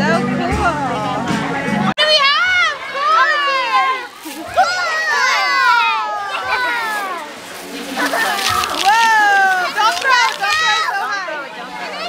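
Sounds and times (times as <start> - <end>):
children shouting and laughing: 2.0 - 12.0.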